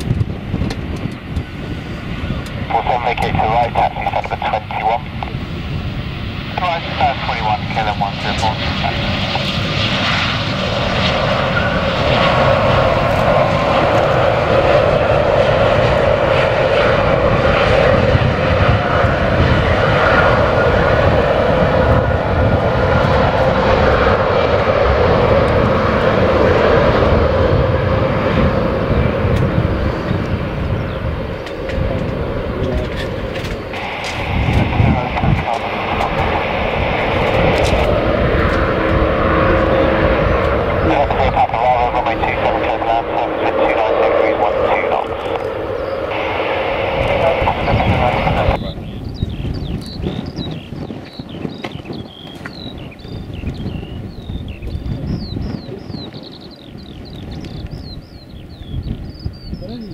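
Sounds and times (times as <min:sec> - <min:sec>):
jet engines running: 0:00.0 - 0:59.9
wind rumbling on microphone: 0:00.0 - 0:59.9.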